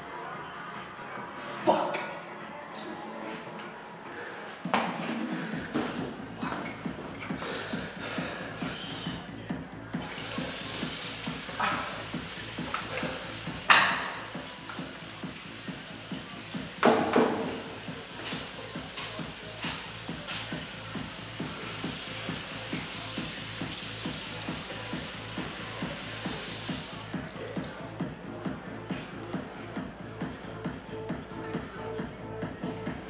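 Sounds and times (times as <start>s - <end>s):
tap water running into sink: 10.0s - 19.8s.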